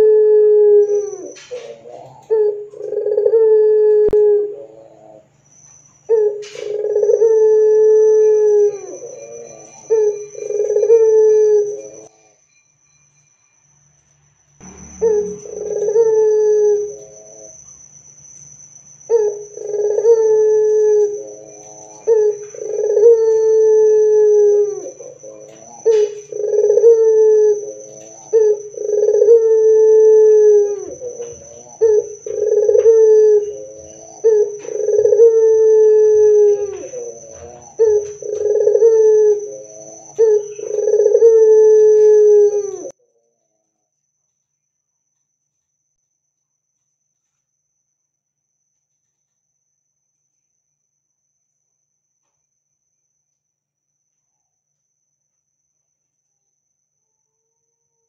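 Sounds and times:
dove cooing: 0.0 - 5.3, 6.1 - 12.1, 14.7 - 17.6, 19.1 - 42.9.

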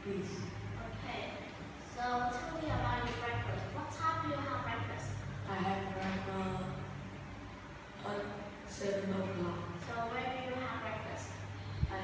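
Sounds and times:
low room hum: 0.0 - 12.0
children speaking: 1.9 - 6.2.

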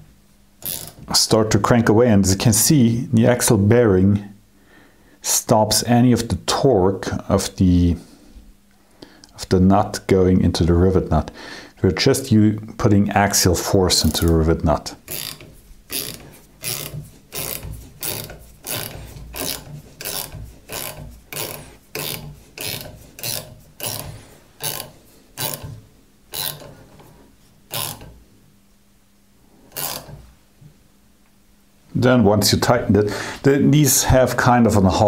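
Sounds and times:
ratcheting wrench clicking: 0.6 - 1.0, 15.1 - 26.7, 27.7 - 28.2, 29.7 - 30.2.

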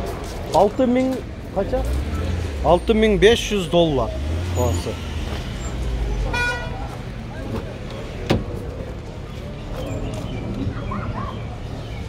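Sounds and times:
low rumble of vehicles: 0.0 - 12.0
vehicle horn beep: 6.3 - 6.8.

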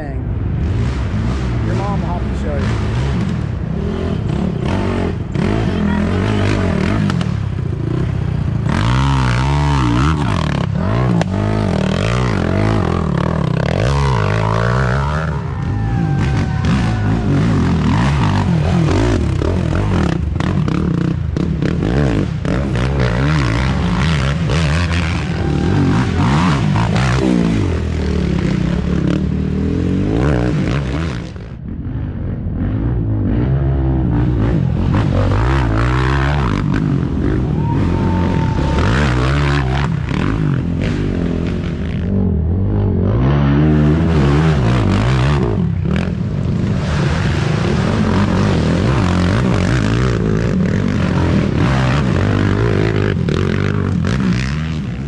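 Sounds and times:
atv engines revving: 0.0 - 55.0.

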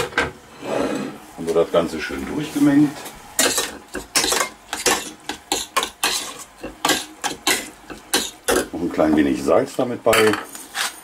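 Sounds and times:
metal spoon scraping a steel pot: 3.4 - 8.6.

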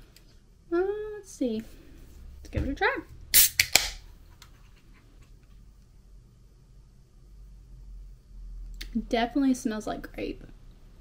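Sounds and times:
can ring-pull cracks: 3.4 - 4.0.

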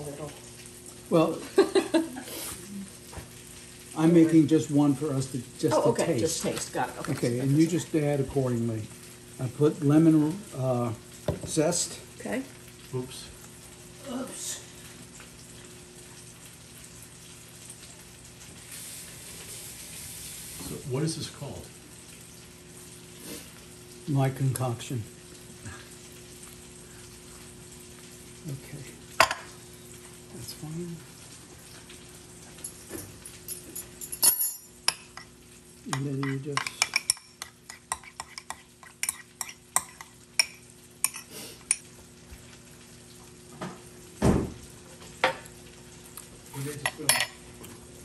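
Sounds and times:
faint steady hum: 0.0 - 48.0
room noise hiss: 0.0 - 48.0
fork clinking in ceramic bowl: 35.9 - 41.8.

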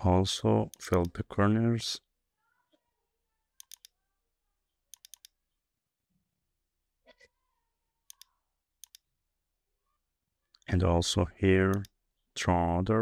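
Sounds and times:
computer mouse clicks: 3.6 - 4.0, 4.9 - 5.4, 8.1 - 9.1, 11.7 - 12.0.

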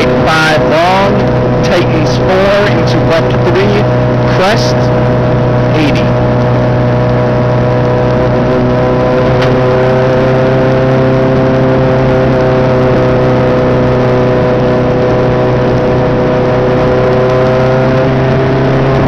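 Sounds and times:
race car engine running hard: 0.0 - 19.0.

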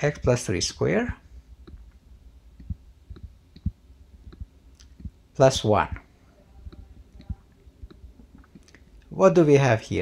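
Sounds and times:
low background hum: 0.0 - 10.0
stylus tapping on tablet screen: 2.6 - 5.2.

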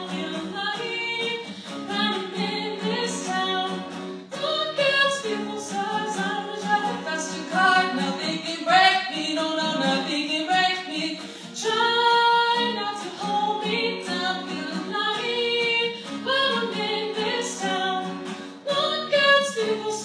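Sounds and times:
woman singing pop song: 0.0 - 20.0.

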